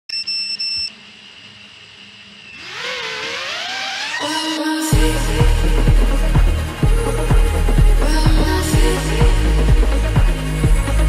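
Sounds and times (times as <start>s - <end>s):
wavering rising synthesizer tone: 2.5s - 11.0s
music: 4.3s - 11.0s.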